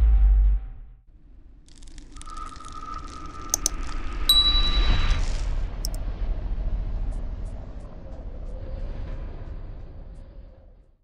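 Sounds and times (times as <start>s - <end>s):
mouse double click: 3.5s - 3.8s
bright notification ding: 4.3s - 5.2s
steady tone: 4.3s - 5.3s.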